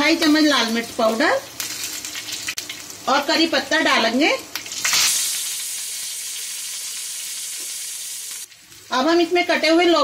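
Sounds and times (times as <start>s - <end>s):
leaves sizzling in hot oil: 0.0s - 10.0s.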